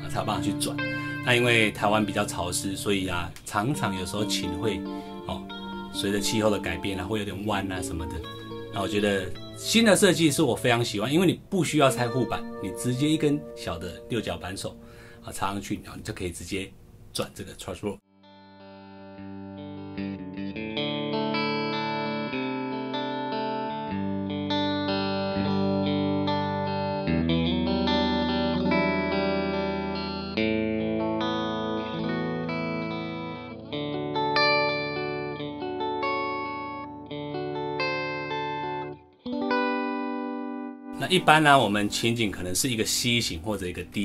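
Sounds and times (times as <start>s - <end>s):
electric guitar melody over chords: 0.0s - 10.9s, 11.7s - 15.2s, 18.2s - 44.0s.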